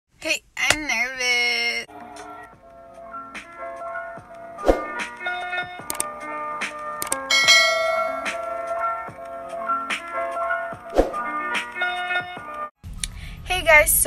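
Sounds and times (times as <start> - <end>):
bright shimmering chime: 7.3 - 8.4
light jingle with bell-like notes: 7.3 - 8.7.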